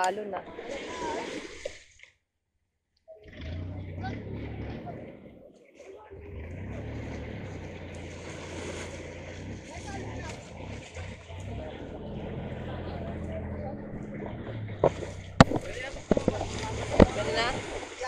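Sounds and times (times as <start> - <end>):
surf on the shore: 0.0 - 2.0, 7.0 - 18.0
boat engine idling: 3.2 - 18.0.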